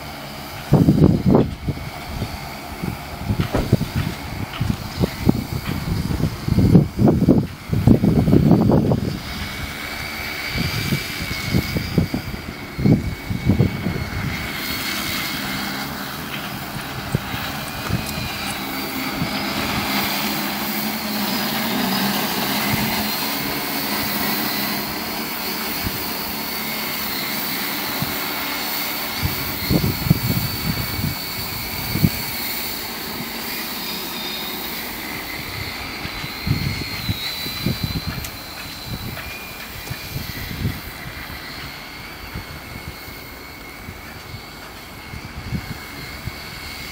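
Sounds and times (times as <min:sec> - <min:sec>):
drone rotors with motor whine: 0:00.0 - 0:46.9.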